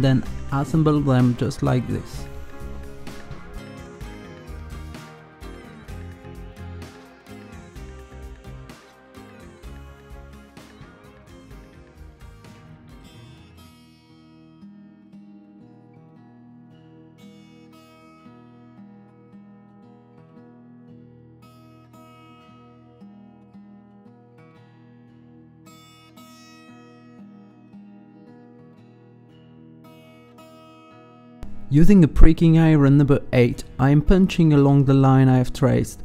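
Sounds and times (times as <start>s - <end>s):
plucked string music: 0.0s - 20.4s.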